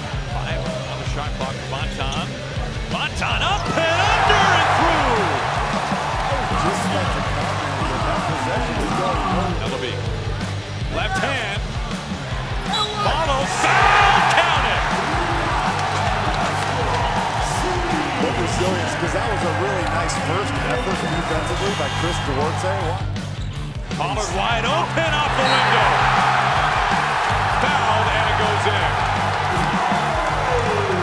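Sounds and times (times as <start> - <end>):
crowd cheering: 2.9 - 23.4, 24.0 - 31.0.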